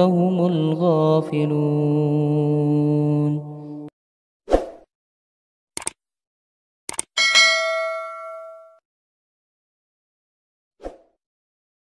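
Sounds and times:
double mouse click: 5.8 - 6.0, 6.9 - 7.1
bright bell ding: 7.2 - 8.8.

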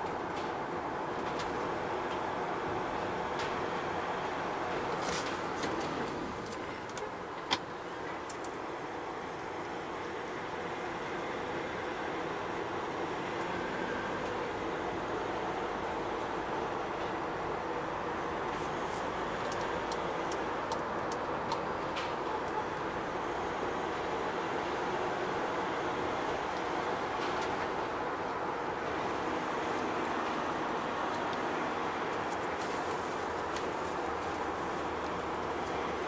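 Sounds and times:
diesel engine drone: 0.0 - 36.0
van cabin road noise: 0.0 - 36.0
turn signal ticking: 19.3 - 22.6.

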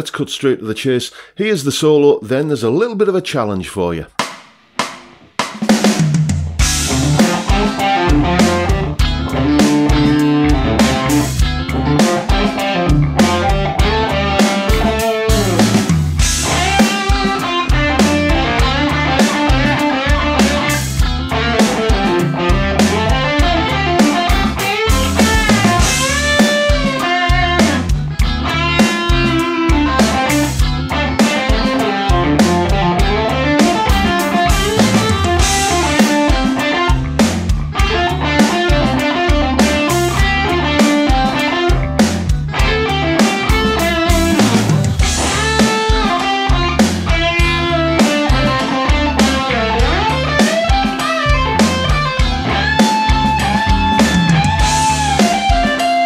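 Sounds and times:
backing track with drums: 4.1 - 56.0
electric guitar solo: 6.6 - 56.0.

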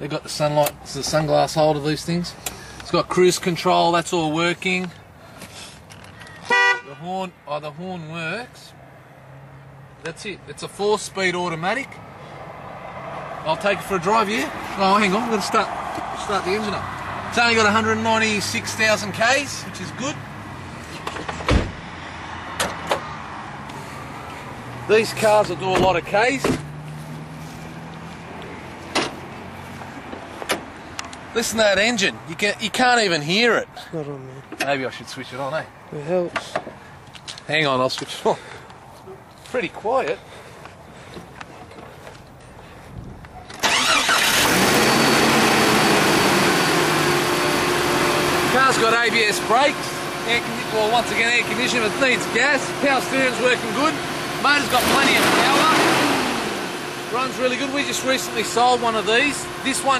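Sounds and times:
car door slamming: 21.4 - 21.8, 25.7 - 26.7
car engine starting and idling: 43.5 - 59.9.

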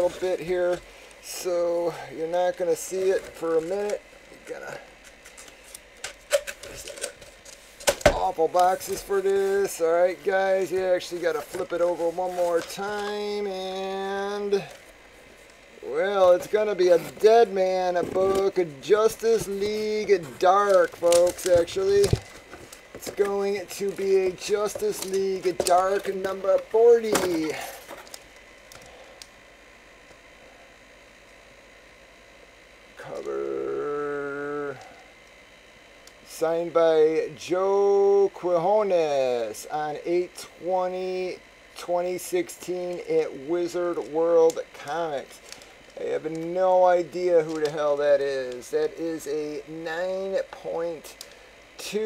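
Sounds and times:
steady hiss: 0.0 - 29.5, 36.0 - 52.0
faint low hum: 0.0 - 52.0.

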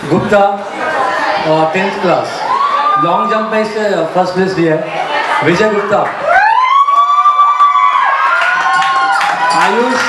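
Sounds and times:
people clapping: 5.9 - 10.0
whooping shout: 6.2 - 10.0.

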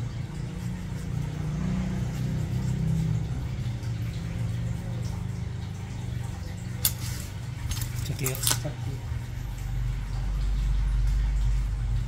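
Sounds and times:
low motor rumble: 0.0 - 12.0.

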